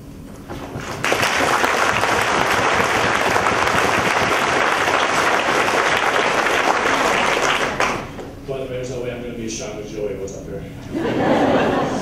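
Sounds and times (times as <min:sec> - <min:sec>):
audience applauding: 0:00.6 - 0:08.2.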